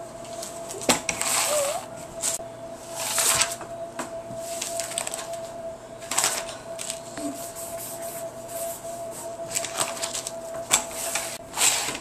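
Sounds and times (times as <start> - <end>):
paper rustling: 0.3 - 3.6, 4.4 - 8.7, 9.5 - 12.0.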